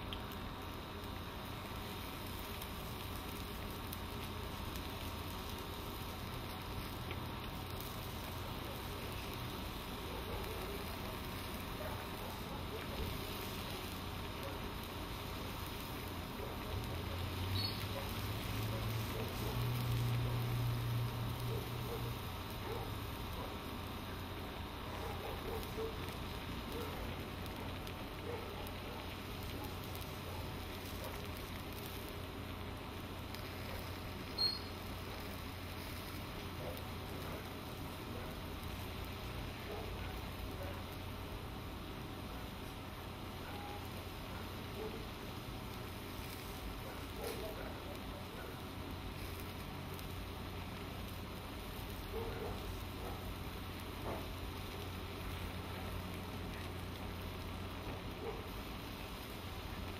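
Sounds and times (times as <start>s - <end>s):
stir-fry sizzling in a wok: 0.0s - 59.9s.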